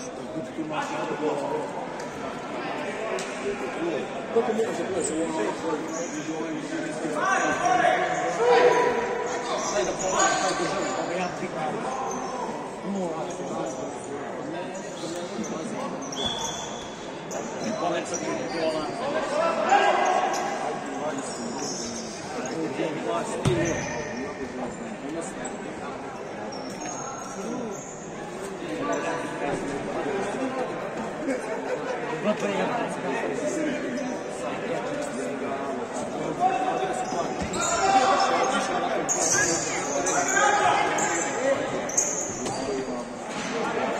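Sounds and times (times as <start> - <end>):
murmur of voices: 0.0 - 43.9.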